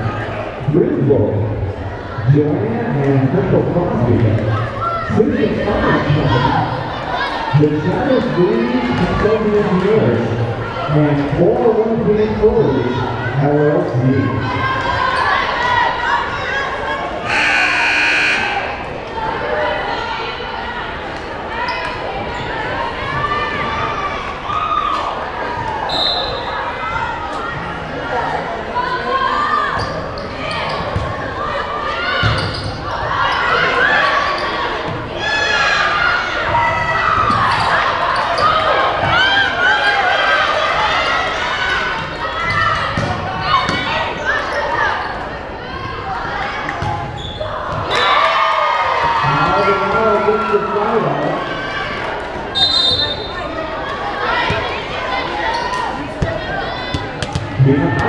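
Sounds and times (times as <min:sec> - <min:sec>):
many overlapping voices: 0:00.0 - 0:58.0
referee's whistle blast: 0:17.3 - 0:18.8, 0:52.6 - 0:53.3
volleyball hits and bounces: 0:42.8 - 0:43.9, 0:56.2 - 0:58.0.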